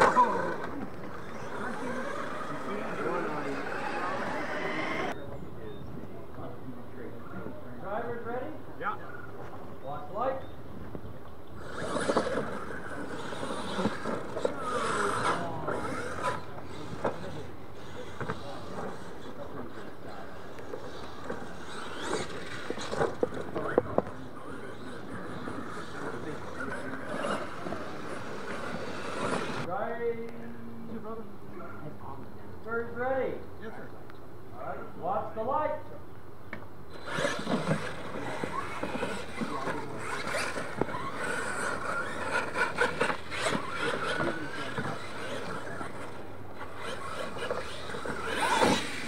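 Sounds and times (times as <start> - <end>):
toy monster truck driving on dirt: 0.0 - 5.2, 11.5 - 29.7, 36.9 - 49.0
people talking: 0.0 - 10.5, 11.8 - 34.0, 37.2 - 49.0.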